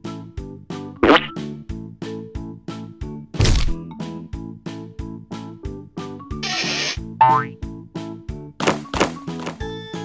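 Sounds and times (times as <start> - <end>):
upbeat children's music: 0.0 - 10.0
rising cartoon boing: 7.2 - 7.6.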